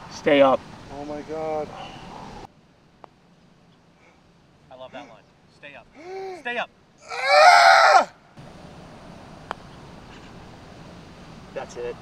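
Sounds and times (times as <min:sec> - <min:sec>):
faint outdoor background: 0:00.0 - 0:12.0
man shouting: 0:06.0 - 0:08.2.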